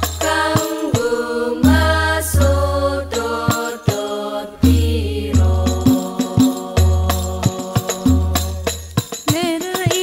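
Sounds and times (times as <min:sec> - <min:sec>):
frame drum beats: 0:00.0 - 0:10.0.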